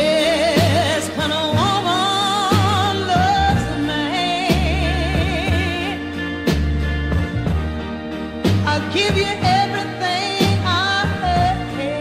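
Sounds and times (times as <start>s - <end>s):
bass and drums: 0.0s - 12.0s
high melody with wide vibrato: 0.0s - 12.0s
slow blues music: 0.0s - 12.0s.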